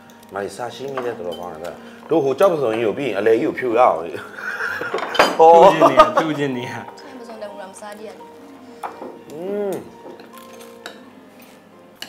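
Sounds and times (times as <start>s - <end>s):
cutlery clinking on ceramic bowl: 0.8s - 1.8s, 4.8s - 5.5s, 10.0s - 11.1s.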